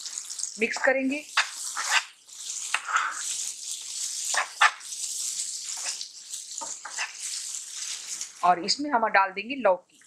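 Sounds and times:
masala sizzling in oil: 0:00.0 - 0:09.1
spatula scraping a pan: 0:00.1 - 0:08.4.

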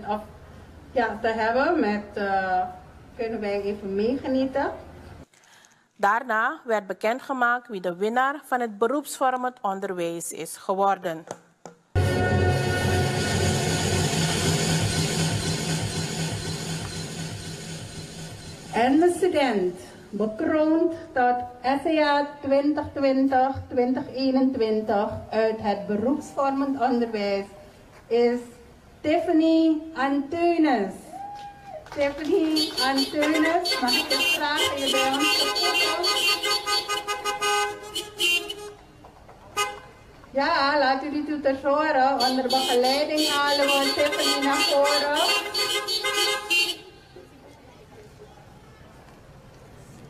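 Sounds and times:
celebration music: 0:12.0 - 0:17.8
car engines idling: 0:13.2 - 0:18.8
party horns tooting: 0:32.4 - 0:38.9, 0:39.5 - 0:40.0, 0:42.2 - 0:47.1.

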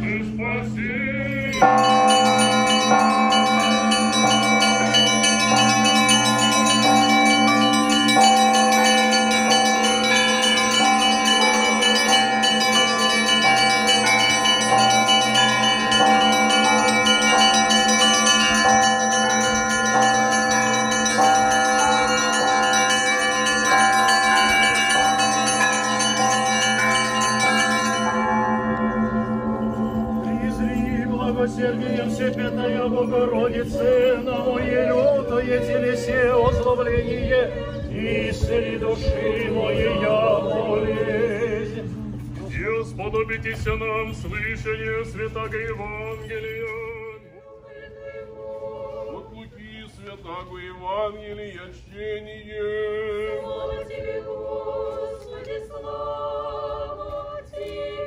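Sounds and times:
steady low hum: 0:00.0 - 0:58.0
church bells ringing: 0:01.3 - 0:47.3.

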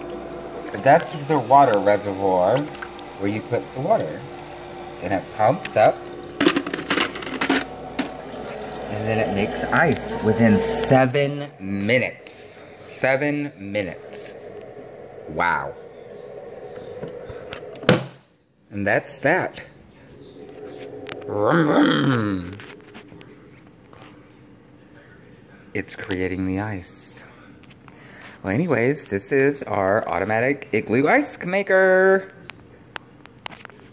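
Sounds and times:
ice maker humming: 0:00.0 - 0:18.2, 0:18.8 - 0:23.4
drawn-out voice-like call: 0:08.2 - 0:17.8.

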